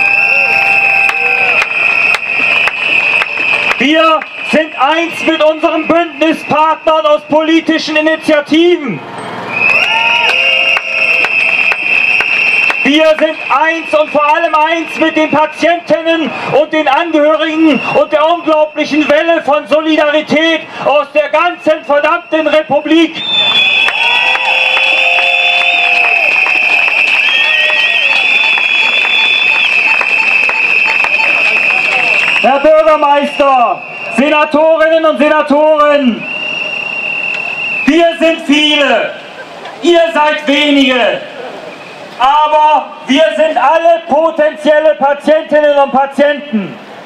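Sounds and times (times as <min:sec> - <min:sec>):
crowd clapping and cheering: 0:00.0 - 0:06.0, 0:09.5 - 0:14.2, 0:23.2 - 0:34.2
long high whistle blast: 0:00.0 - 0:07.3, 0:09.5 - 0:15.6, 0:22.0 - 0:35.1, 0:36.1 - 0:38.2
sharp clacking noisemakers: 0:00.0 - 0:07.4, 0:09.6 - 0:15.6, 0:21.9 - 0:35.4.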